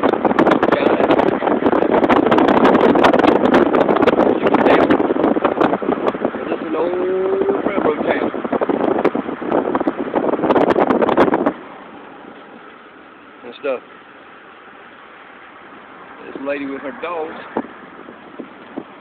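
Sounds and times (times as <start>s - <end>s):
car road noise: 0.0s - 19.0s
wind buffeting microphone: 0.0s - 19.0s.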